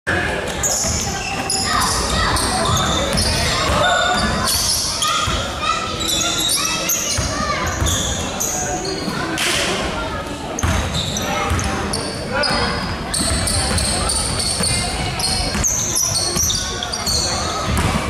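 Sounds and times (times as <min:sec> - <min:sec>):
players' voices: 0:00.1 - 0:18.0
sneaker squeaks: 0:00.5 - 0:09.9, 0:10.5 - 0:18.0.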